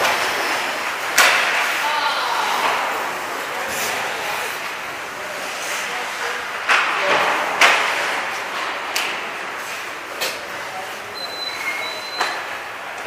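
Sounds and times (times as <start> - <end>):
hockey sticks and pucks clacking: 0.0 - 1.9, 2.5 - 4.8, 5.4 - 11.0.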